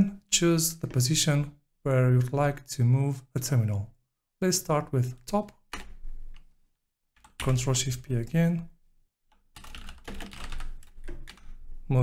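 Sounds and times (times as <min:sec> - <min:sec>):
typing on computer keyboard: 0:09.5 - 0:11.6.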